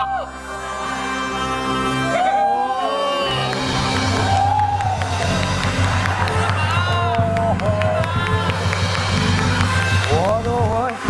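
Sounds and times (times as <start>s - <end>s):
gamelan music: 0.0s - 11.0s
audience cheering: 1.9s - 11.0s
drum strokes: 3.6s - 11.0s.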